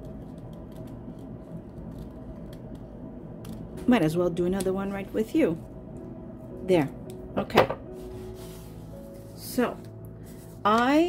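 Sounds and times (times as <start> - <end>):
scissors snipping paper: 0.0 - 3.6
steady low hum: 0.0 - 11.0.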